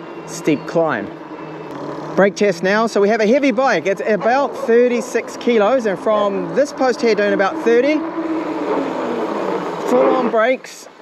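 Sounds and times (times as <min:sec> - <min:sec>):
bike tyres rushing on asphalt: 0:04.2 - 0:10.8.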